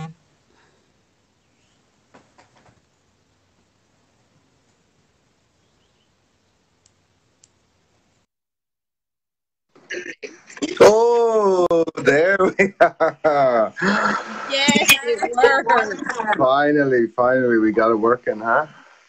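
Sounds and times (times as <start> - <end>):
faint room hiss: 0.0 - 8.3, 9.7 - 19.0
soft clicks: 6.8 - 7.6.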